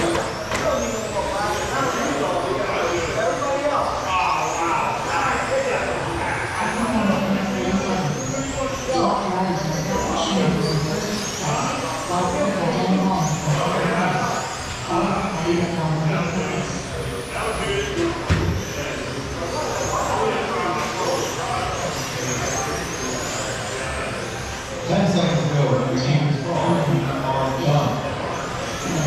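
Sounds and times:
people talking: 0:00.0 - 0:29.0
rc car motors whining: 0:00.0 - 0:29.0.

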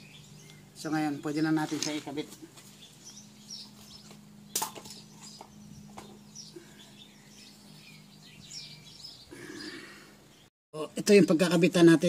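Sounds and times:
small birds chirping: 0:00.0 - 0:10.5.

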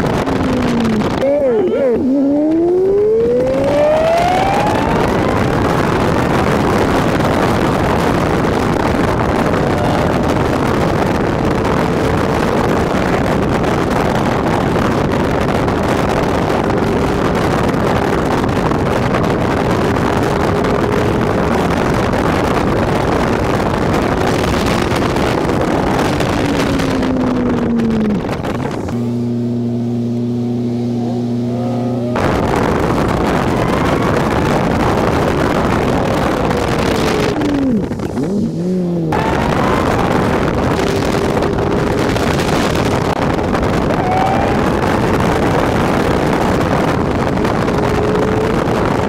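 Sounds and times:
car engine: 0:00.0 - 0:49.0
wind and road rush: 0:00.0 - 0:49.0.

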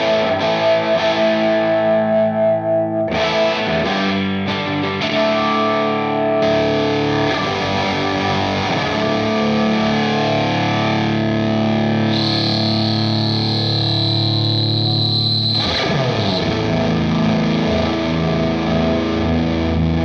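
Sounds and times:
overdriven electric guitar chords: 0:00.0 - 0:20.0
high steady tone: 0:12.0 - 0:16.2.

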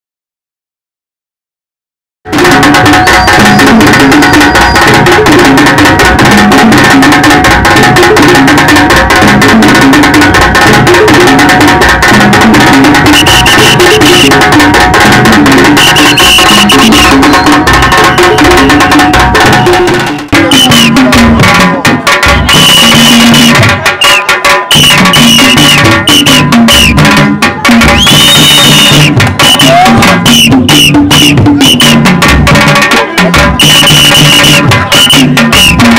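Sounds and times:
repeating melodic line: 0:02.3 - 0:21.6, 0:22.5 - 0:23.6, 0:24.7 - 0:27.2, 0:27.8 - 0:35.9
rapid traditional drumming: 0:02.3 - 0:35.9.

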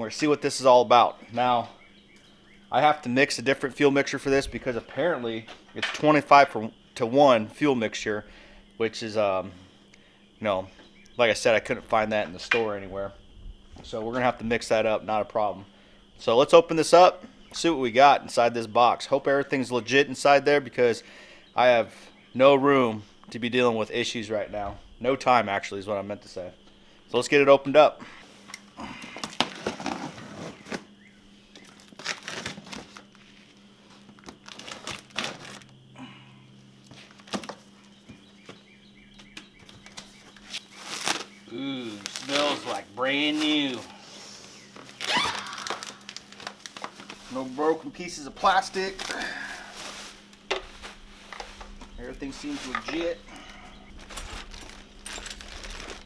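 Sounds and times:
steady low hum: 0:00.0 - 0:56.0
plastic packing wrap rustling: 0:31.6 - 0:35.7, 0:40.0 - 0:43.9, 0:44.7 - 0:56.0.

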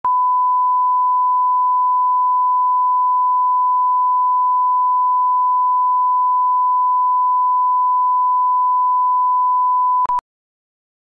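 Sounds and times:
click: 0:10.0 - 0:10.2.

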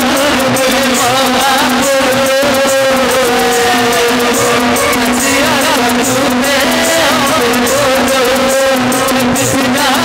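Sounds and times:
devotional melody with bends: 0:00.0 - 0:10.0.

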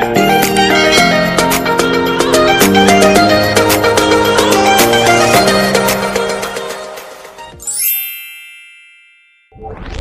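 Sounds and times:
bell-like chime: 0:07.6 - 0:09.6.

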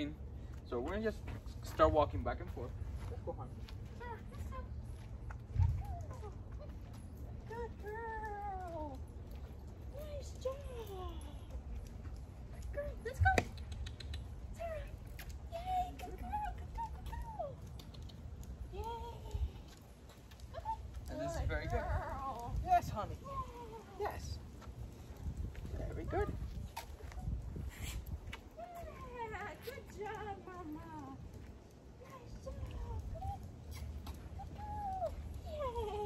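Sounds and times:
footsteps on asphalt: 0:23.3 - 0:36.0.

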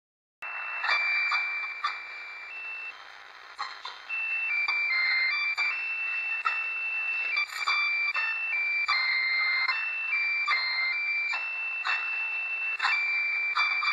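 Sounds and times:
high beeping notes on radio: 0:00.4 - 0:13.9
radio hiss: 0:00.4 - 0:13.9
static crackles: 0:00.4 - 0:13.9.

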